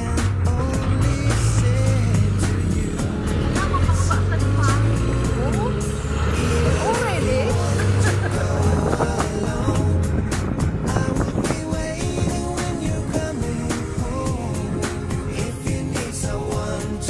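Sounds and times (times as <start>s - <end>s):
music playing: 0.0s - 17.0s
vehicle engine running: 0.0s - 17.0s.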